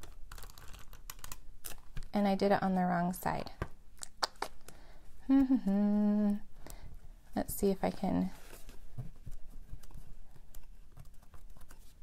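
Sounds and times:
soft paper rustling: 7.6 - 12.0.

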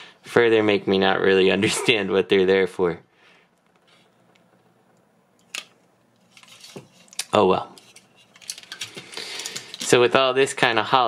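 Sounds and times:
faint handling noise: 3.5 - 10.9.

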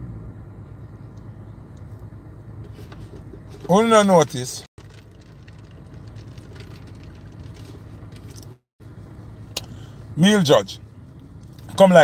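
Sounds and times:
car cabin rumble: 0.0 - 12.0.

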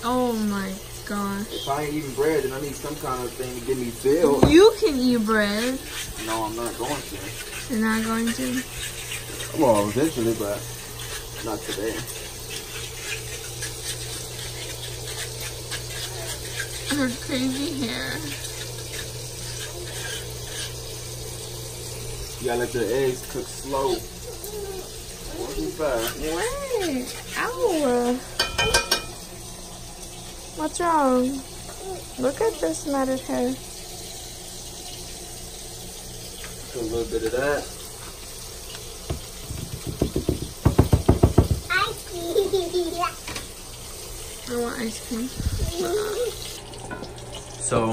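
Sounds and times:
food sizzling and popping: 0.0 - 47.9
seasoning shaker knocking: 4.3 - 5.0, 38.8 - 41.8.

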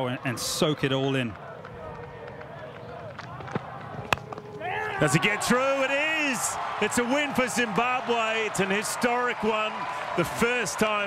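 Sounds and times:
cricket bat striking ball: 3.0 - 4.6.

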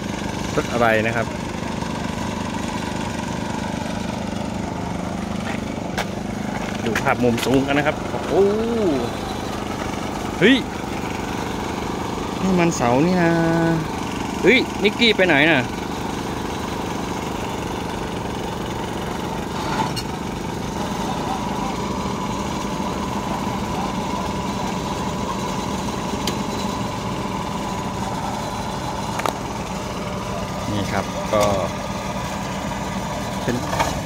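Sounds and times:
truck engine idling: 0.0 - 34.0.

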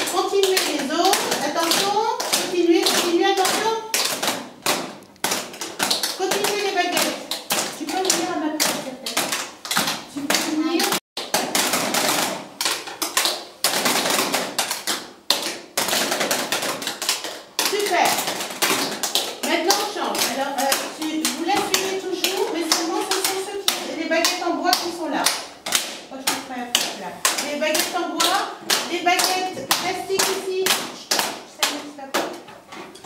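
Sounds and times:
voices: 19.4 - 25.5.

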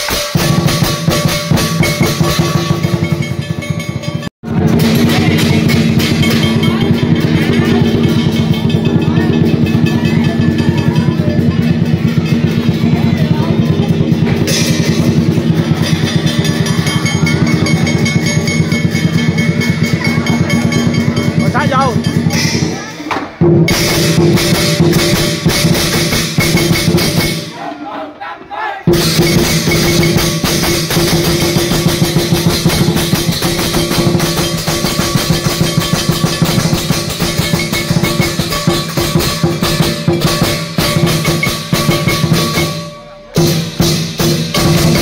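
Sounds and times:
big drum fast roll: 0.0 - 27.5, 28.9 - 45.0
cymbals clashing: 0.0 - 28.0, 28.9 - 45.0.

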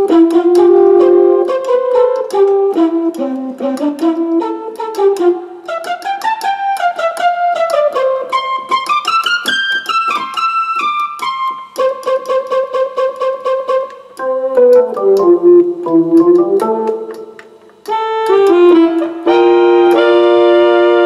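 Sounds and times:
piano-like keyboard melody: 7.9 - 17.4.

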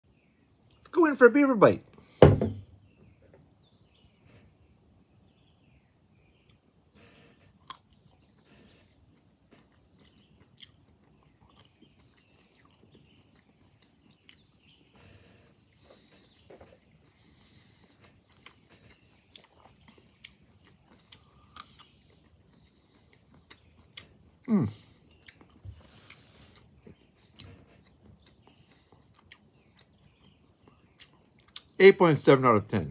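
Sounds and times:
faint chewing of an olive: 2.9 - 31.8.

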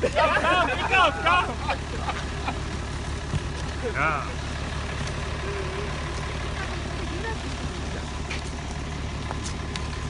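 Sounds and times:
truck engine idling: 0.0 - 10.0.

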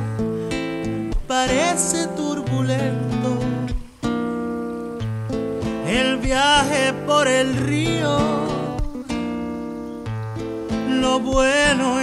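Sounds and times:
acoustic guitar strumming: 0.0 - 12.0
man singing: 1.0 - 4.0, 5.8 - 9.2, 10.6 - 12.0.

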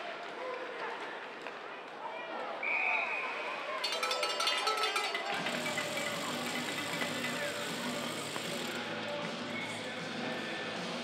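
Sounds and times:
crowd chatter: 0.0 - 11.0
music over public address: 3.9 - 11.0.

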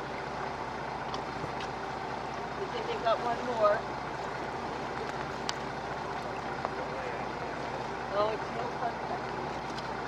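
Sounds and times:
choppy water: 0.0 - 10.0
low steady hum: 0.0 - 10.0.

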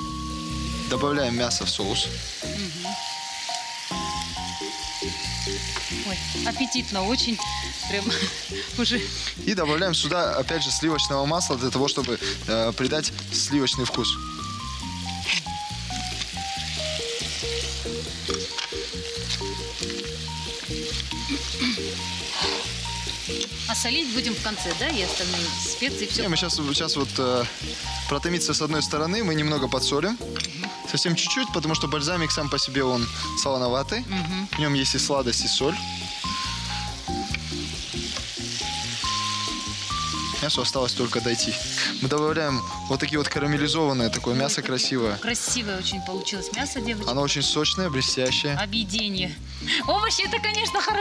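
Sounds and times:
background music: 0.0 - 51.0
meat sizzling in a pan: 0.0 - 51.0.

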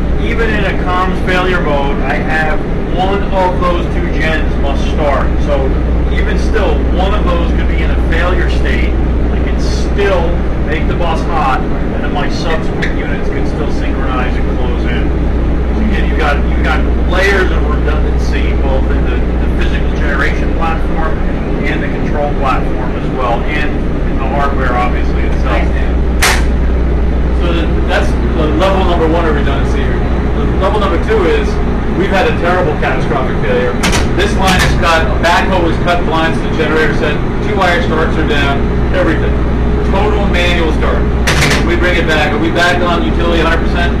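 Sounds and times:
generators droning: 0.0 - 44.0
sharp click: 26.2 - 26.6, 33.8 - 34.8, 41.2 - 41.7.

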